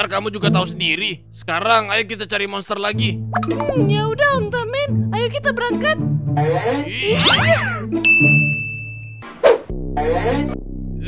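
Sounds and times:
bright cartoon ding chime: 7.3s - 9.2s.

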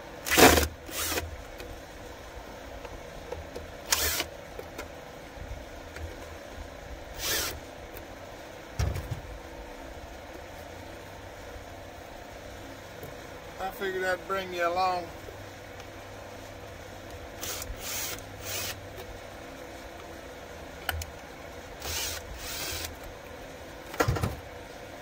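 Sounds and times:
cordless drill bursts: 0.2s - 1.3s, 3.9s - 4.3s, 7.2s - 7.6s, 17.4s - 18.8s, 21.8s - 23.0s.

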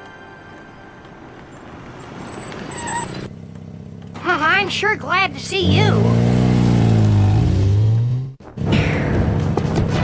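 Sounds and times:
cartoon car engine approaching: 1.1s - 8.4s
high squeal of car stopping: 2.1s - 3.3s.

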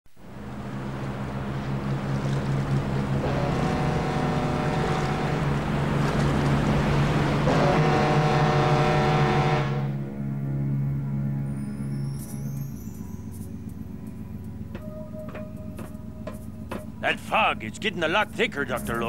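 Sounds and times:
boat engine humming: 0.1s - 19.0s
water rushing past hull: 0.2s - 9.9s
held higher tone: 10.6s - 19.0s.

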